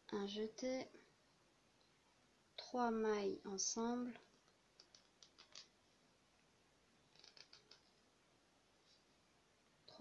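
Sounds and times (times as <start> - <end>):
knitting needles clicking: 4.3 - 5.8, 7.1 - 7.9.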